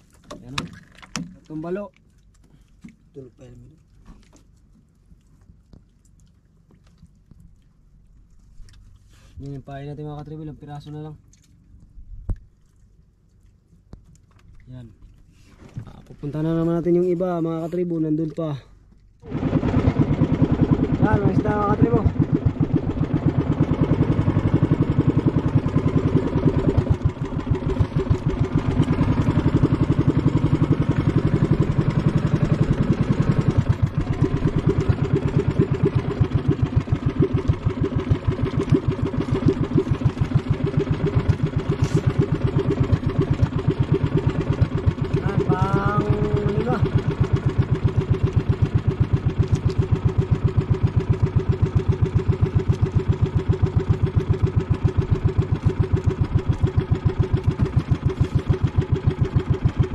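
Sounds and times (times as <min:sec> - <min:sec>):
boat engine chugging: 0:12.4 - 0:59.9.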